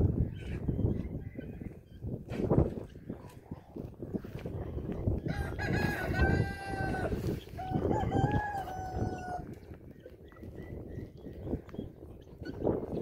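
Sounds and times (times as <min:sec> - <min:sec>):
rooster crowing: 0:05.3 - 0:09.4.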